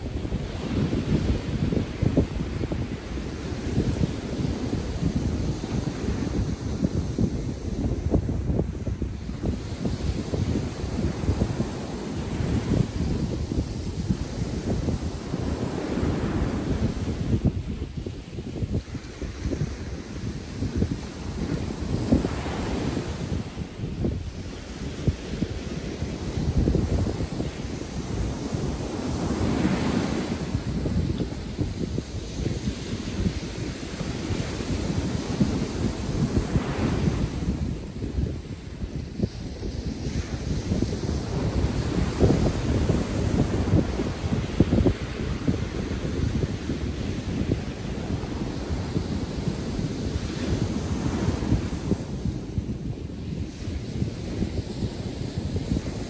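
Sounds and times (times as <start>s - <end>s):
ocean surf breaking: 0.0s - 56.0s
wind buffeting microphone: 0.0s - 56.0s.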